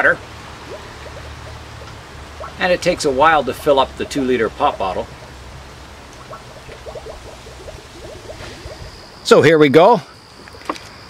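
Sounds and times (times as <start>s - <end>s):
bottle glugging under water: 6.2s - 9.0s.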